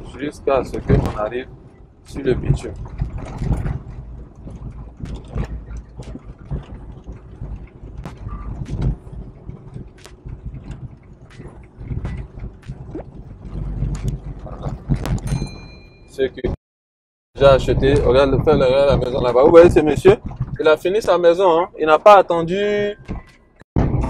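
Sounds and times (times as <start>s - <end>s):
knocks and rattles: 0.0s - 16.5s, 17.4s - 24.0s
car engine and tyres rumbling: 0.0s - 16.6s, 17.4s - 24.0s.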